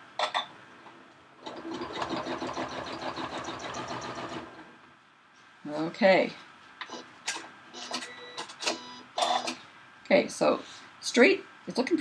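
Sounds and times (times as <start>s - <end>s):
sewing machine stitching: 1.4s - 4.6s.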